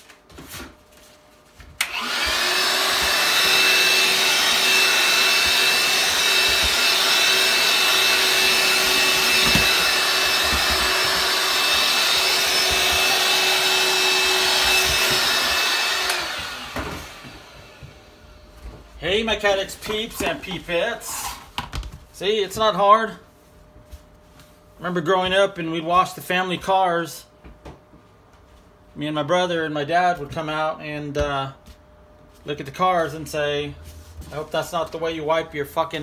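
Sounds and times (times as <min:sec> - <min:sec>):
vacuum cleaner switch: 0:01.8 - 0:17.4
vacuum cleaner running: 0:01.8 - 0:21.4.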